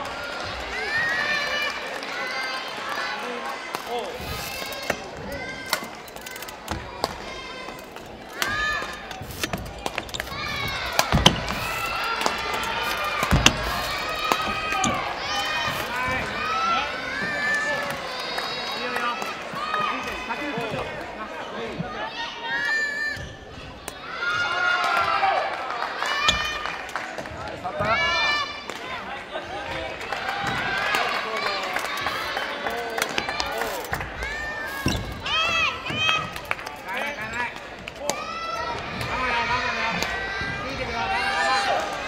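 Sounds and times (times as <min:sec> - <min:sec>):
shoes squeaking on wooden floor: 0:07.8 - 0:16.6, 0:34.7 - 0:36.1.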